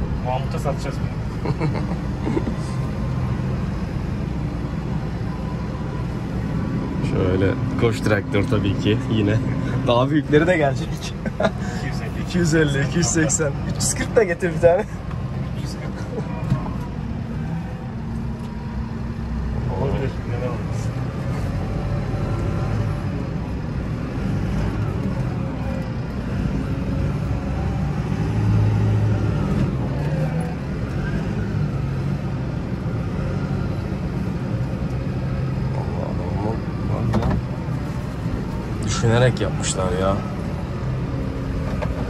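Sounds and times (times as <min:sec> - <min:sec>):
tractor engine drone from cab: 0:00.0 - 0:42.0.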